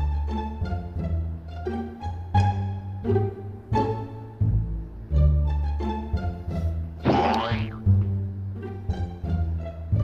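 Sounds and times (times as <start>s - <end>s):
cartoon pitch slide effect: 7.0s - 7.8s
playful plucked-string music: 7.0s - 9.1s.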